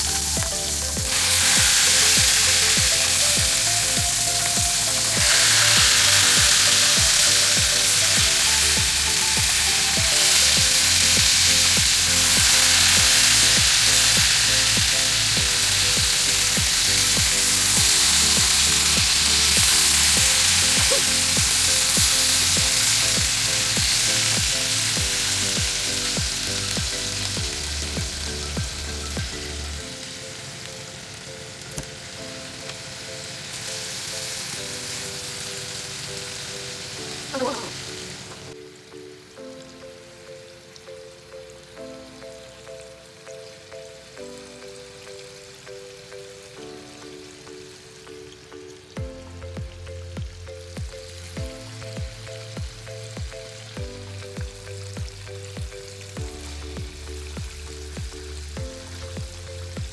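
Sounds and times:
background music: 0:00.0 - 0:59.9
pork sizzling in oil: 0:00.0 - 0:59.9.

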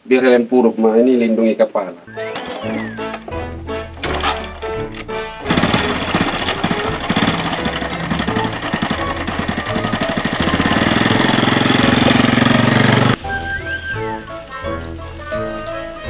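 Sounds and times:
motorcycle engine chugging: 0:04.0 - 0:13.2.

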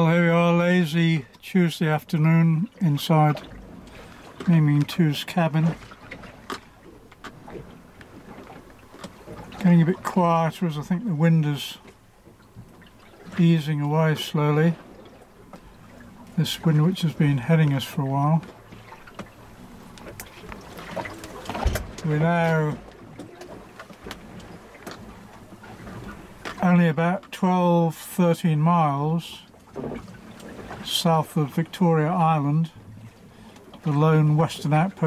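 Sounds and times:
light ticks and creaks: 0:00.0 - 0:27.5, 0:29.0 - 0:35.0
water and wind rushing on hull: 0:00.0 - 0:35.0.

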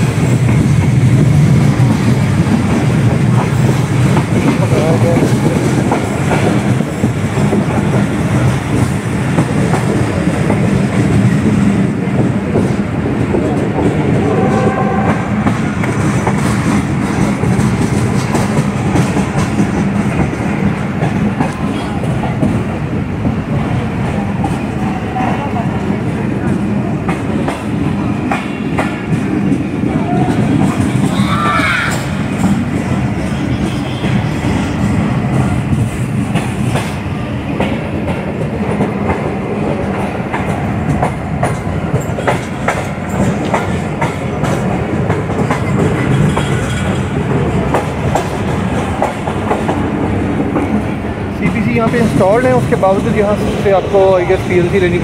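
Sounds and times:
train rumbling over rails: 0:00.0 - 0:55.0
wheels clicking over rail joints: 0:26.3 - 0:53.6.

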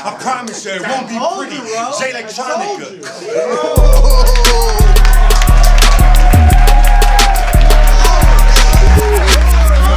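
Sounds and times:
fast hi-hats: 0:03.8 - 0:09.9.

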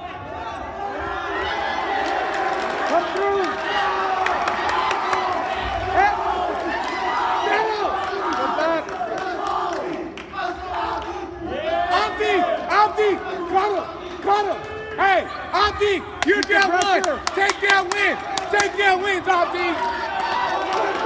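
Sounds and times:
crowd shouting and cheering: 0:00.0 - 0:21.0.

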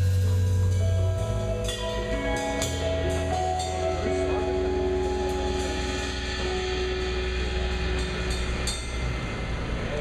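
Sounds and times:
live rock band playing: 0:00.0 - 0:08.0
cymbal crash: 0:00.0 - 0:10.0.

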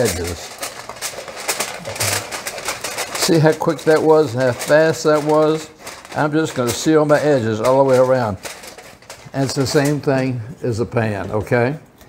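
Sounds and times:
aluminium foil crinkling: 0:00.0 - 0:11.8.

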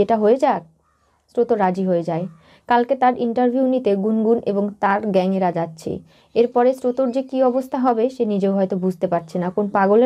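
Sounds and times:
woman narrating: 0:00.0 - 0:00.7, 0:01.3 - 0:10.0.

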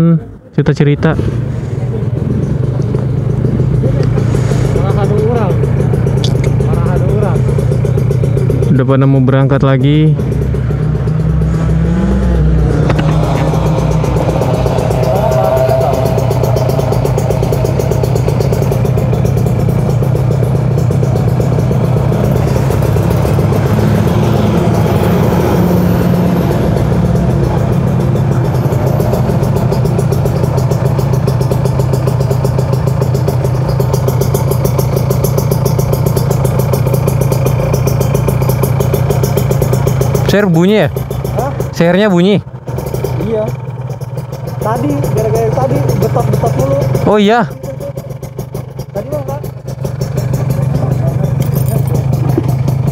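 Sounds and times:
motorcycle engines idling: 0:00.0 - 0:52.9.

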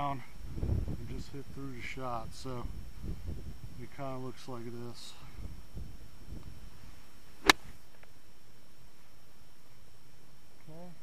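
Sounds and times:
golf club striking ball: 0:07.4 - 0:07.8.

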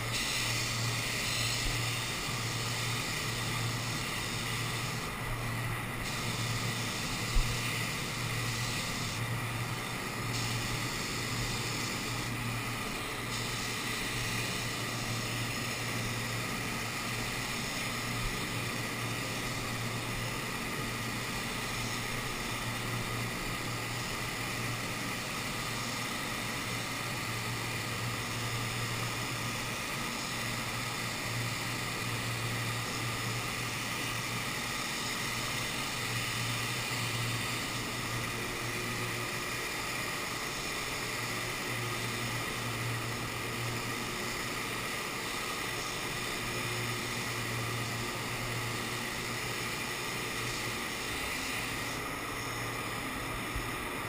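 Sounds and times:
machinery humming and hissing: 0:00.0 - 0:54.0.

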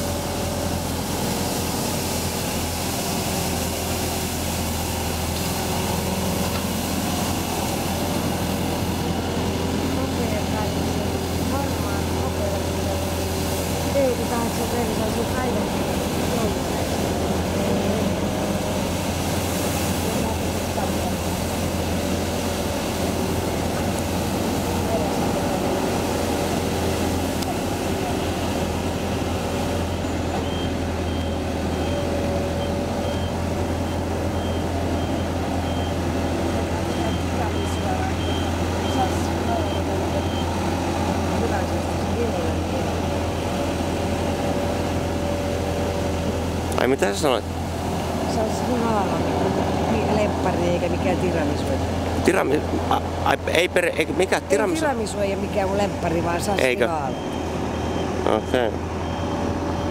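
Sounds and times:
street sweeper engine humming: 0:00.0 - 0:59.9
high-pitched beeper: 0:56.5 - 0:59.9.

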